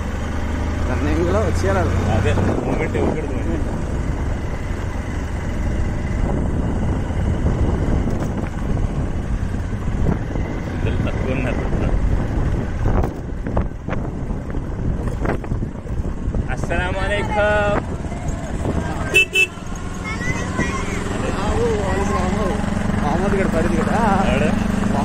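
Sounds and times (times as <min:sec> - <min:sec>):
vehicle engine and tyre rumble: 0:00.0 - 0:25.0
wind buffeting microphone: 0:01.3 - 0:25.0.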